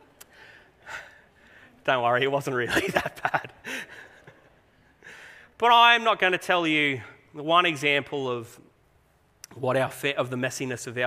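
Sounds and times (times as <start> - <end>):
man talking: 1.8 - 3.5, 5.6 - 8.7, 9.4 - 11.0.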